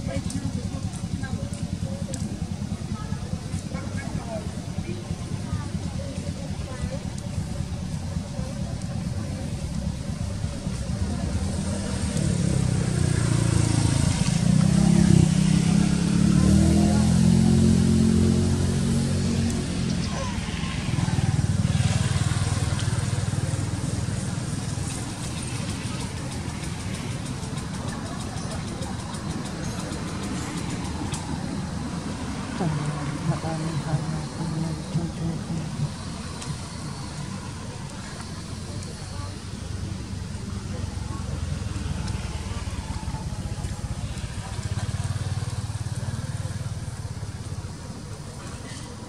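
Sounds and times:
vehicle engine passing by: 0:00.0 - 0:49.0.

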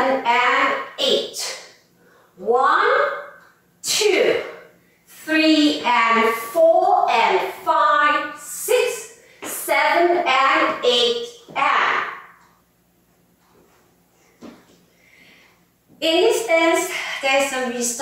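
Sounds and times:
woman calling out: 0:05.3 - 0:12.4.

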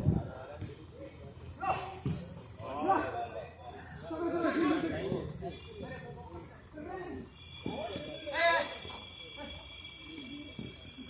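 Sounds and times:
footballers shouting: 0:01.4 - 0:11.0.

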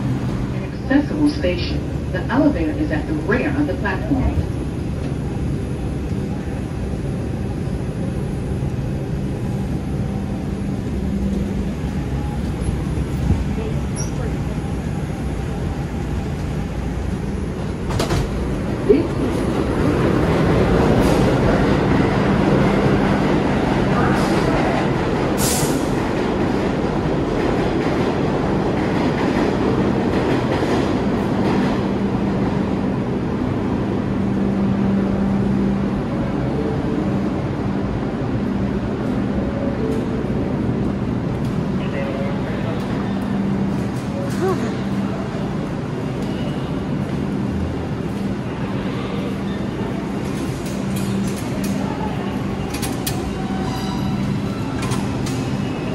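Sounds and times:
subway train rumble: 0:00.0 - 0:55.9.

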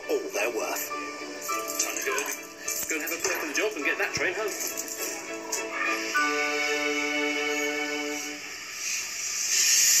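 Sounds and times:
steam locomotives hissing: 0:05.2 - 0:10.0.

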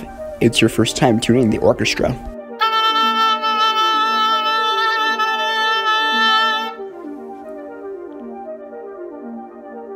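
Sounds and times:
sustained tuning note: 0:02.6 - 0:08.6.

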